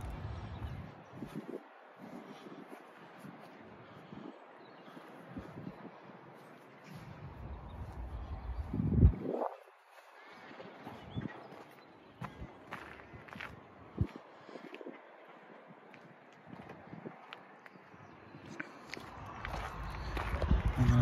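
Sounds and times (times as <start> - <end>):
wind buffeting microphone: 0.0 - 21.0
footsteps on gravel: 9.1 - 15.0, 15.9 - 21.0.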